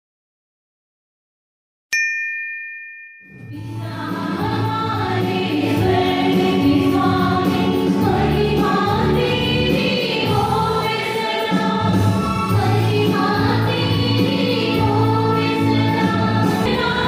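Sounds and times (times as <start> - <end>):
women's choir singing a hymn: 3.6 - 17.0.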